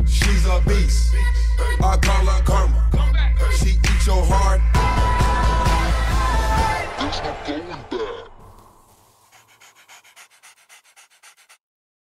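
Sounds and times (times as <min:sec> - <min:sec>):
music: 0:00.0 - 0:07.9
rhythmic panting: 0:07.9 - 0:11.6.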